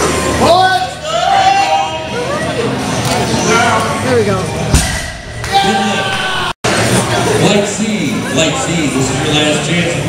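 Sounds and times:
people talking and calling out: 0.1 - 10.0.

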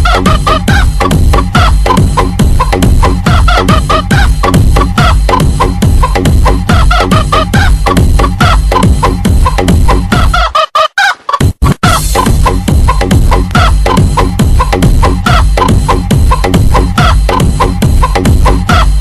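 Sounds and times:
electronic dance music with bass beat: 0.0 - 10.6, 11.4 - 19.0
sampled chicken clucks: 0.0 - 19.0.

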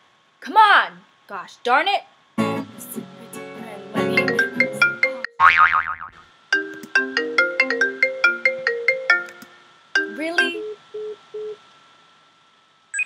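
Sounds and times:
phone ringtone melody: 4.1 - 5.4, 6.6 - 9.4.

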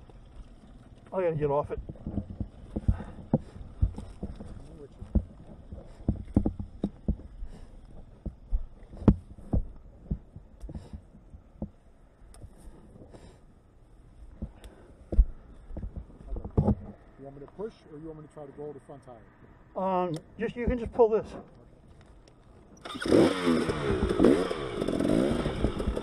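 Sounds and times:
dirt bike thuds on rock: 1.7 - 11.8, 14.4 - 16.9, 20.6 - 21.0.

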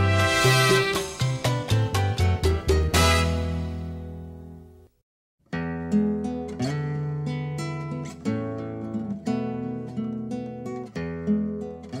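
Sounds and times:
strummed acoustic guitar: 5.5 - 12.0.

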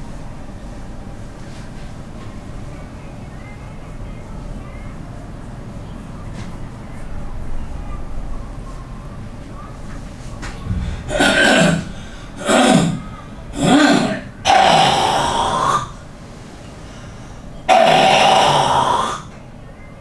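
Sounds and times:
man exhaling and groaning: 10.7 - 16.0, 17.7 - 19.2.

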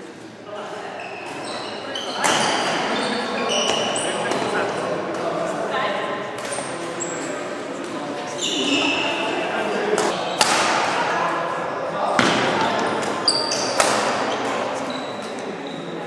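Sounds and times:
echoing voices chattering: 0.0 - 16.0
shoes squeaking on wooden floor: 0.9 - 4.6, 8.3 - 9.4, 12.6 - 15.9
racket hitting shuttlecock: 10.0 - 11.0, 12.2 - 14.6.

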